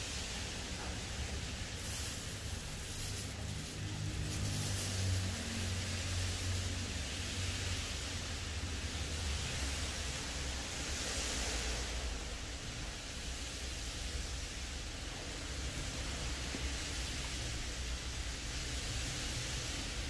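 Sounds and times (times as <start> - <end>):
heavy rain hissing: 0.0 - 20.0.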